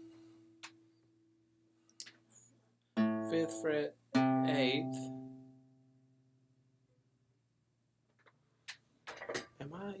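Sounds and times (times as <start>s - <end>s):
acoustic guitar note ringing: 3.0s - 6.0s.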